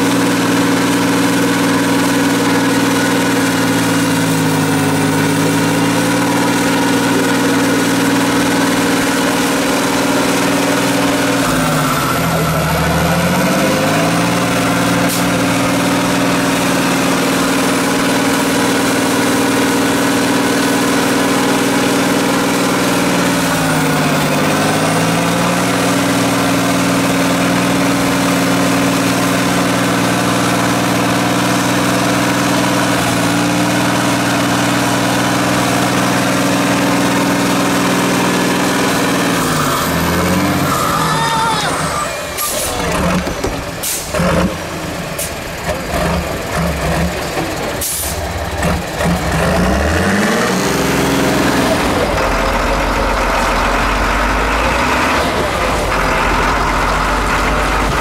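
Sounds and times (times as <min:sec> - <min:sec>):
diesel truck engine revving: 0:00.0 - 0:58.0.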